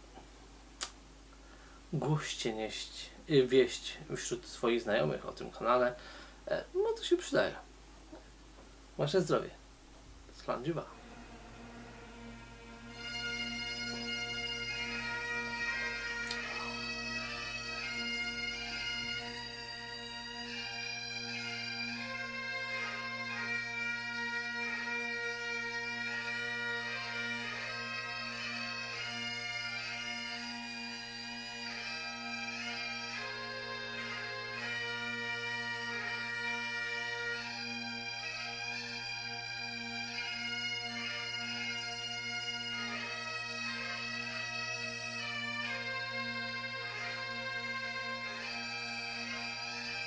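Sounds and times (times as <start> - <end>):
pipe band bagpipe music: 10.4 - 50.0.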